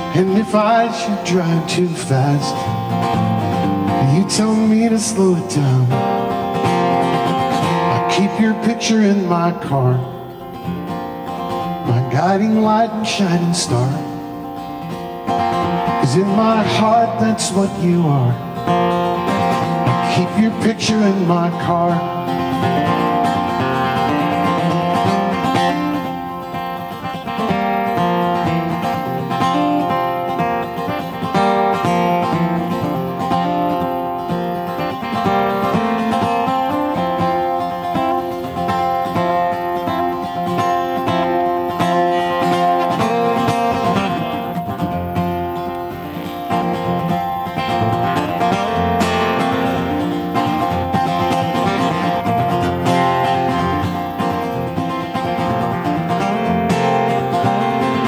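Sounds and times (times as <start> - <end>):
acoustic guitar melody: 0.0 - 58.0.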